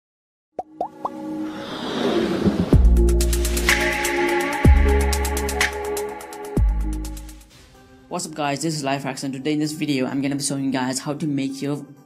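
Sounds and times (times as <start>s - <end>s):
rising bloop pops: 0.6s - 1.2s
brightening whoosh: 1.1s - 4.0s.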